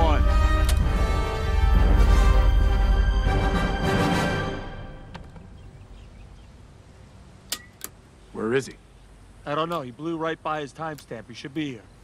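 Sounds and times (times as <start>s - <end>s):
film soundtrack music: 0.0s - 6.4s.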